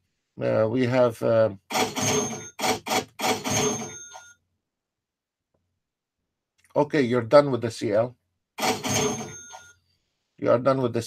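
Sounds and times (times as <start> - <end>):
metallic alert chime: 1.9 - 2.6, 3.4 - 4.3, 8.7 - 9.8.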